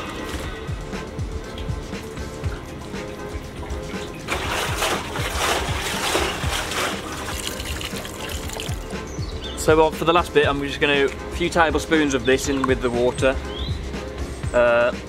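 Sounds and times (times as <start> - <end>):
water pouring into metal tank: 0.0 - 9.1
background music with steady beat: 0.0 - 15.0.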